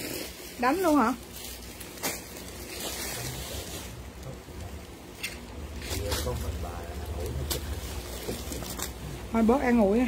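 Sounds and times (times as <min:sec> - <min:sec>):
silky garment rustling: 0:00.0 - 0:04.0.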